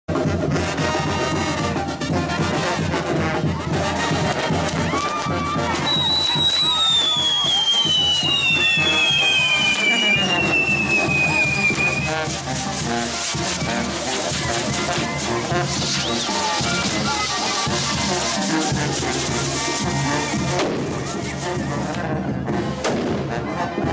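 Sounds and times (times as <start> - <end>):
crowd voices: 0.1 - 23.9
festival band with brass and drum: 0.1 - 23.9
high whistles falling in pitch: 5.7 - 12.2, 15.8 - 17.5.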